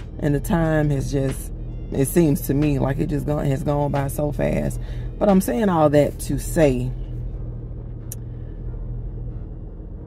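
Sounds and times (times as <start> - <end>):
car cabin rumble and hum: 0.0 - 10.0.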